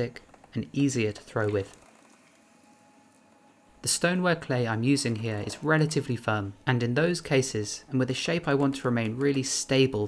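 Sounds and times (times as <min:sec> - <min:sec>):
man narrating: 0:00.0 - 0:01.8, 0:03.8 - 0:10.0
faint steady hum: 0:00.0 - 0:10.0.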